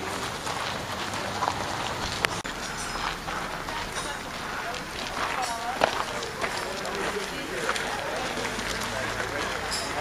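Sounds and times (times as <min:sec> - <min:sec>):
distant people chattering: 0:00.0 - 0:10.0.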